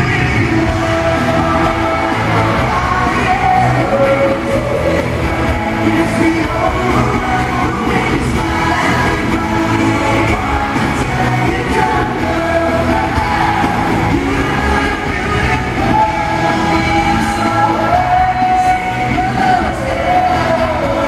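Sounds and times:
lead vocals singing: 0.0s - 21.0s
live pop band: 0.0s - 21.0s.

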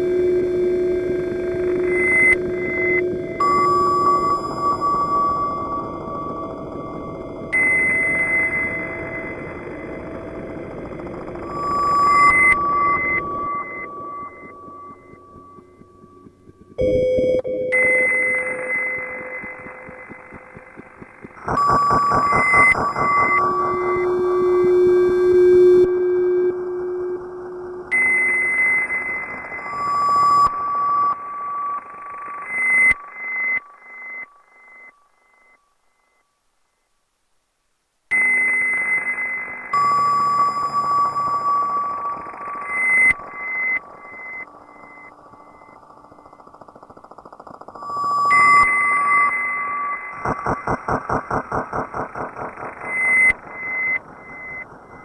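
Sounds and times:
experimental electronic music: 10.4s - 29.6s, 49.0s - 55.0s.

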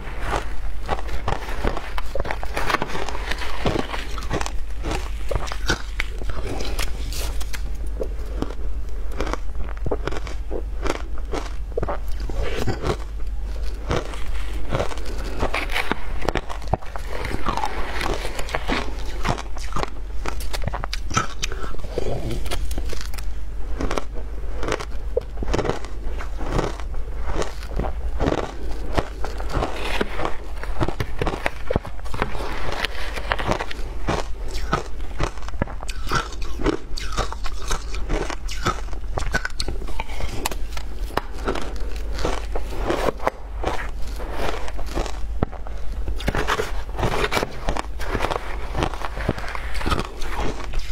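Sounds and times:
crunching and chewing ice: 0.0s - 50.9s.

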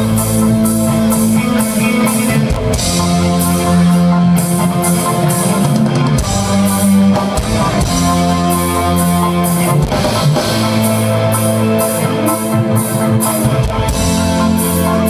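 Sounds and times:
rock band playing: 0.0s - 15.0s.

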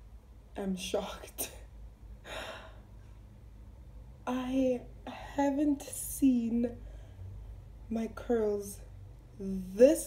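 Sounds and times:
woman gasping: 2.2s - 2.9s.

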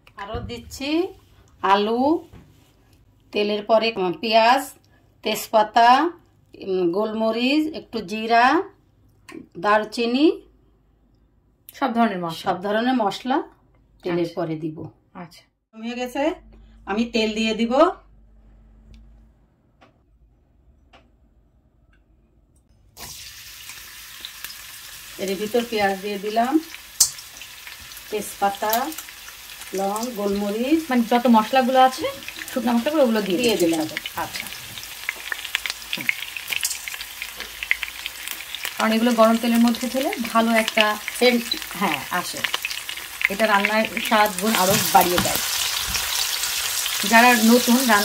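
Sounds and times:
onions sizzling in hot oil: 23.0s - 48.0s.

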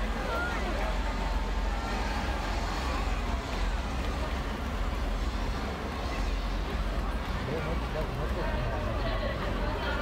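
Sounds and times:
crowd voices: 0.0s - 10.0s
passing vehicle engines rumbling: 0.0s - 10.0s.

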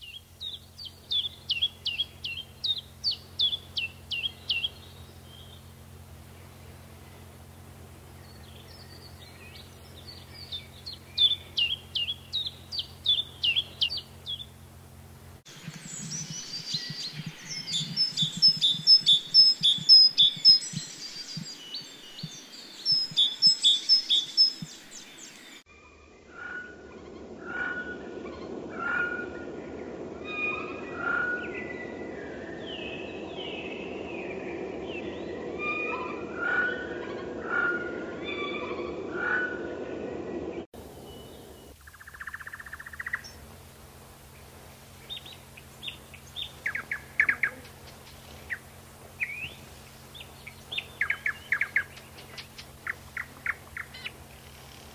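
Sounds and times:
bird singing rapid repeated phrases: 0.0s - 14.7s, 15.5s - 25.6s, 41.0s - 43.4s, 44.8s - 54.9s
bird singing simple repeated notes: 0.0s - 39.6s, 40.4s - 54.9s
steady background noise: 26.8s - 54.9s.

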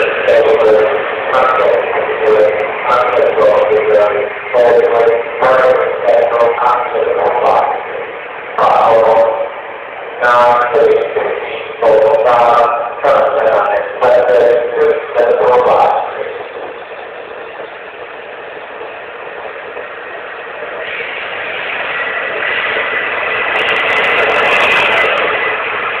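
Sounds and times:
diesel engine whining: 0.0s - 26.0s
train coaches and wheels rushing: 0.0s - 26.0s.

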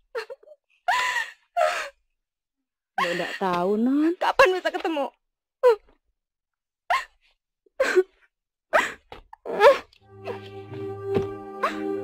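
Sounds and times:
person sighing or gasping: 8.8s - 12.0s.

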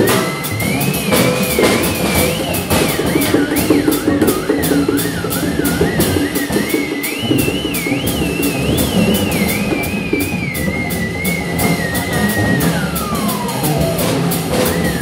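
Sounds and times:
drum kit playing: 0.0s - 15.0s
theremin with wavering vibrato: 1.7s - 15.0s.

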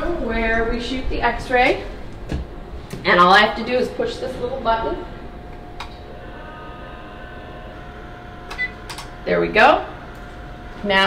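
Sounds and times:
high whine: 0.0s - 11.0s
x-ray machine electrical tone: 0.0s - 11.0s.

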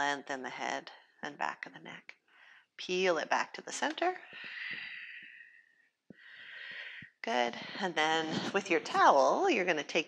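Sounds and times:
woman breathing: 2.2s - 2.8s, 4.2s - 8.6s.

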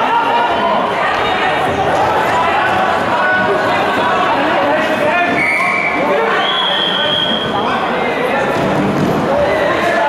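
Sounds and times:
crowd shouting and calling: 0.0s - 10.0s.

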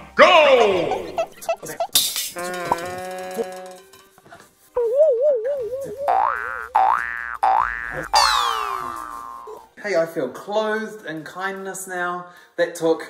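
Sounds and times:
cartoon boings: 5.5s - 9.7s
cartoon falling swoop: 7.7s - 9.6s.

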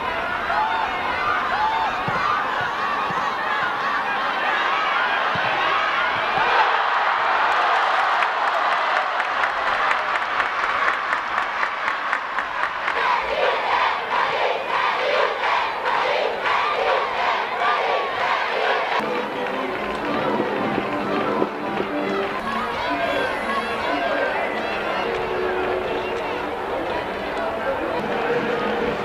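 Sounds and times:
crowd chanting or clapping: 0.0s - 29.0s
crowd shouting and cheering: 0.0s - 29.0s.

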